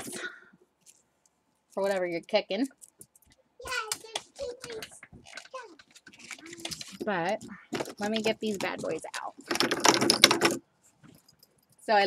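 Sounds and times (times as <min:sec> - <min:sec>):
metal sticks clicking and rattling: 0:02.7 - 0:12.0.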